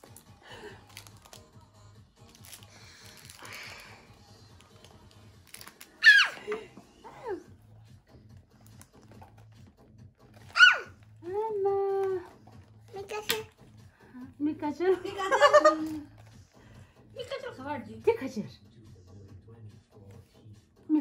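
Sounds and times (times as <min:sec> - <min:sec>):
girl squealing: 0:06.0 - 0:06.4, 0:10.5 - 0:11.0.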